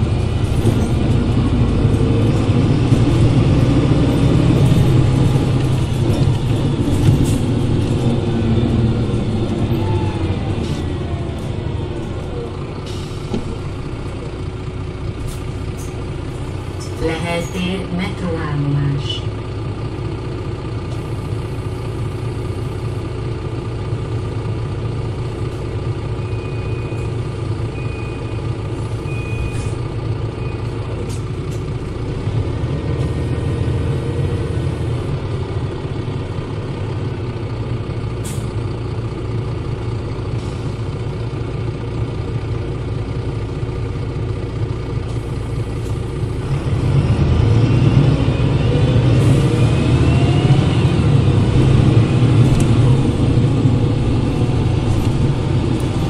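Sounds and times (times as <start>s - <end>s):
diesel bus engine running: 0.0s - 56.0s
engine whine rising in pitch: 46.4s - 56.0s.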